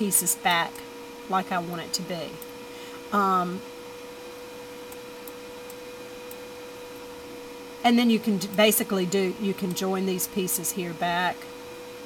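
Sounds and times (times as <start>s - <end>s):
steady electrical hum: 0.0s - 12.0s.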